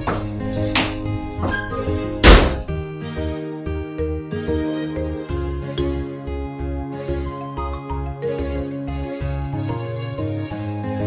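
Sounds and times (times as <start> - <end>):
door being shut: 0.0 - 2.7
soft piano film music: 0.0 - 11.0.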